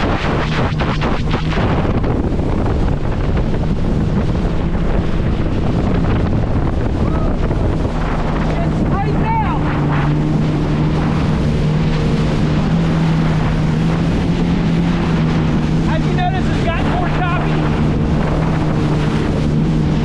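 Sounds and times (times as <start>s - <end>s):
personal watercraft engine droning: 0.0s - 20.0s
wind buffeting microphone: 0.0s - 20.0s.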